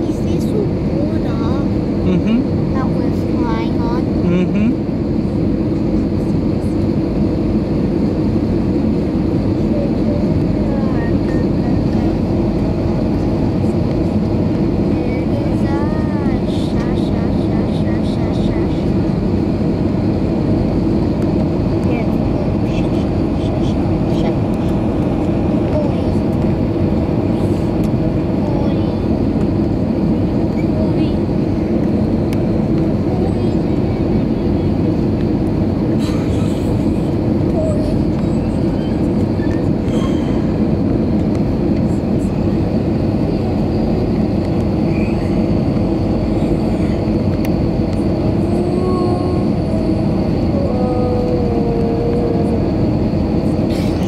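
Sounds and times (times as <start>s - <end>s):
airplane cabin drone: 0.0s - 54.0s
faint voices in cabin: 0.0s - 54.0s.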